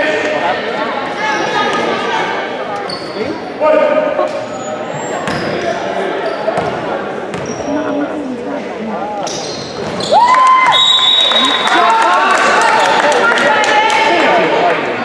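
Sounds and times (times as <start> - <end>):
voices echoing in hall: 0.0 - 15.0.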